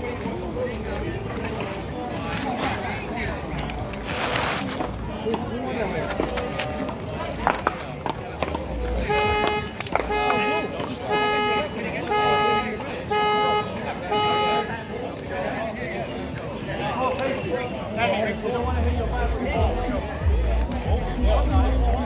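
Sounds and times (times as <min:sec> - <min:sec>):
vehicle horn honking: 0:09.0 - 0:14.8.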